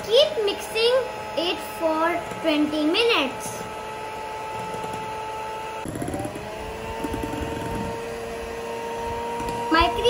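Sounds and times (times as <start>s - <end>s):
electric hand mixer whining: 0.0s - 10.0s.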